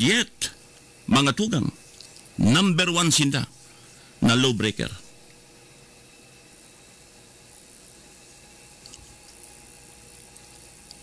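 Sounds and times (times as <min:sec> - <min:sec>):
faint hum tones: 0:00.0 - 0:11.0
steady hiss: 0:00.0 - 0:11.0.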